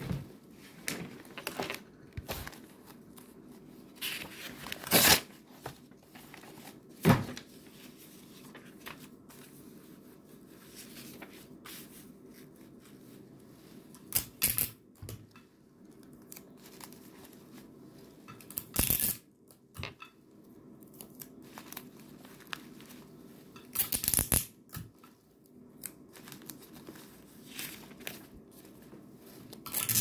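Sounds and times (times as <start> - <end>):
faint paper handling: 0.6 - 14.0, 25.8 - 29.7
paper tearing: 4.6 - 5.3.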